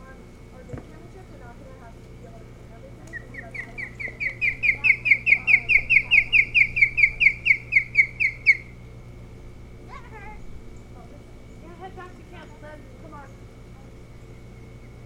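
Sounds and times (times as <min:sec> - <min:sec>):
osprey whistled chirps: 0:03.1 - 0:08.8.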